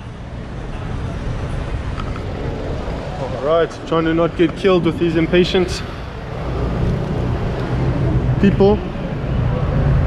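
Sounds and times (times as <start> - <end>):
car engine rumble in traffic: 0.0 - 10.0.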